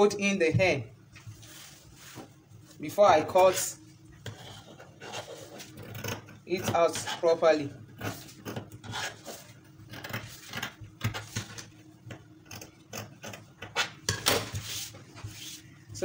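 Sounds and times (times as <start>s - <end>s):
cloth rustling on table: 1.1s - 2.9s, 14.4s - 15.7s.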